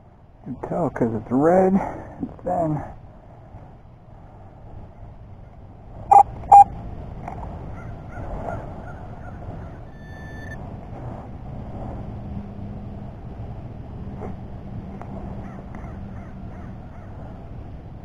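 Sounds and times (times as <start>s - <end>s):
faint outdoor background: 0.0s - 18.0s
thin beep: 6.1s - 6.7s, 9.9s - 10.6s
crow cawing: 15.4s - 17.2s.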